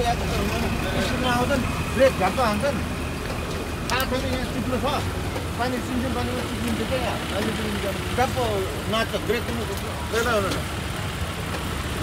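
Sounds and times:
people talking: 0.0 - 2.9, 3.9 - 10.7
vehicle engine idling: 0.0 - 12.0.

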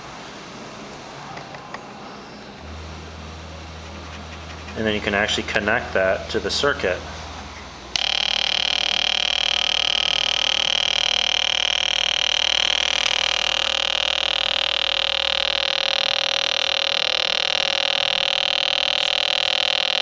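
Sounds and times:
electronic tone buzzing: 7.6 - 20.0.

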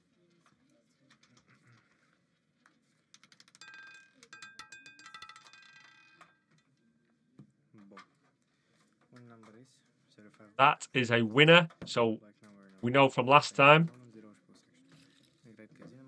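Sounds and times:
roulette ball clattering: 3.2 - 6.4.

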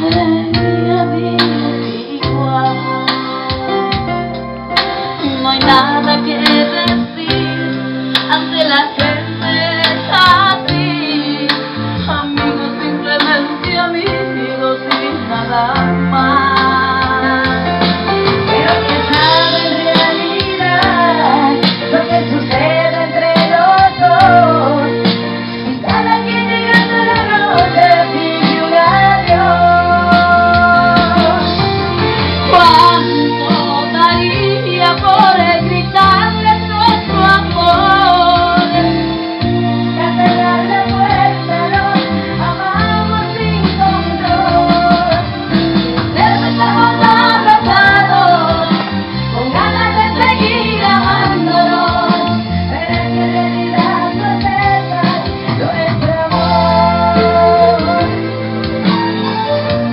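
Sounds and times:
woman singing into microphone: 0.0 - 4.2, 4.8 - 59.6
backing music with bass line: 0.0 - 59.9
electronic keyboard accompaniment: 0.0 - 59.9.

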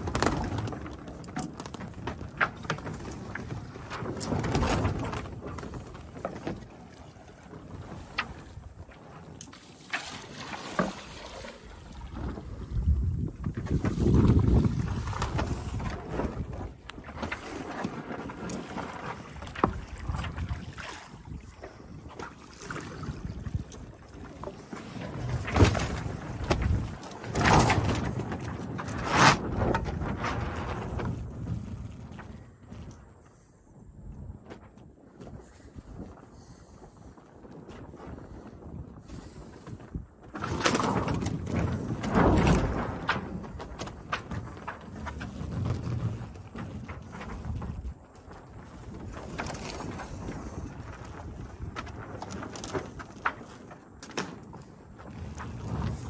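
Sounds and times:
sails flapping: 0.0 - 56.0.

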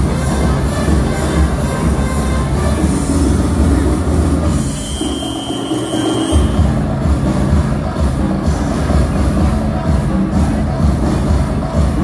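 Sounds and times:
loud dance music: 0.0 - 12.0
high whistle-like tone: 4.5 - 6.8.

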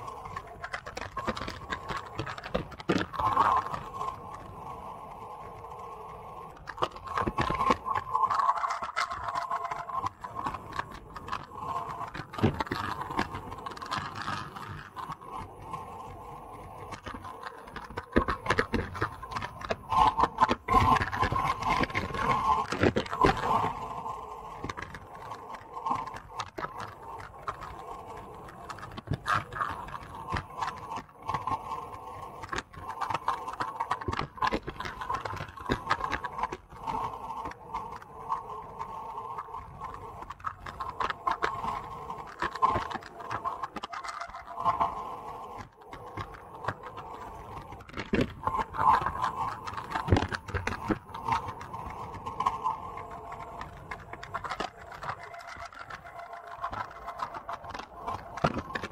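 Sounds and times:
wind rushing over camera: 0.0 - 58.9.

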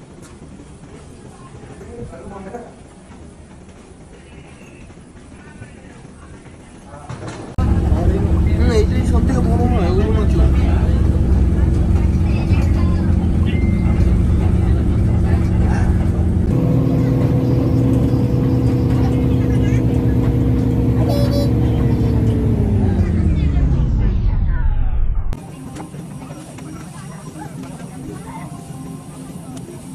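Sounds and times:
jet airliners droning hum: 0.0 - 29.9.

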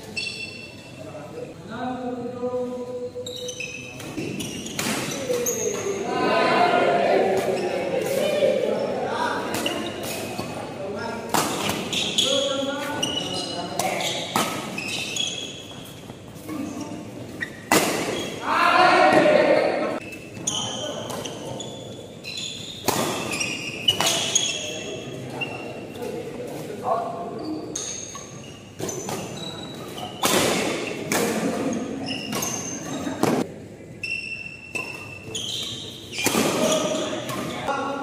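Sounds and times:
shoes squeaking on court floor: 0.0 - 1.1, 3.1 - 6.0, 6.7 - 10.7, 11.3 - 19.3, 19.9 - 37.7
players' voices: 0.9 - 15.5, 16.3 - 22.0
loud shout: 6.0 - 7.4, 18.4 - 20.0.

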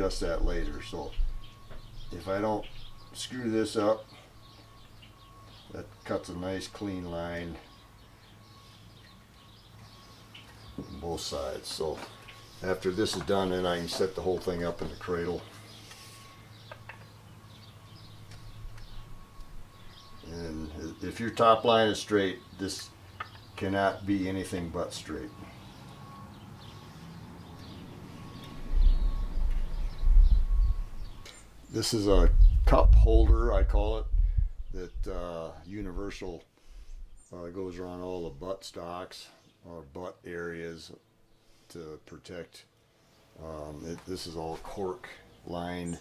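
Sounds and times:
faint bird chirps: 0.0 - 38.5
low steady hum: 0.0 - 38.6
low rumble: 28.2 - 36.2.

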